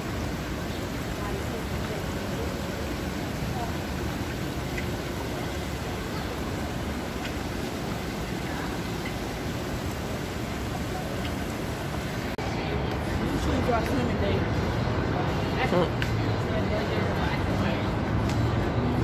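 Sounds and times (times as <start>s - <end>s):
waterfall rushing: 0.0s - 12.4s
faint distant voices: 0.0s - 19.0s.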